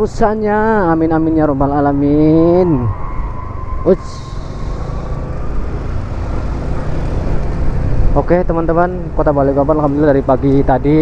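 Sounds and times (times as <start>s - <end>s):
scooter engine hum: 1.2s - 8.2s.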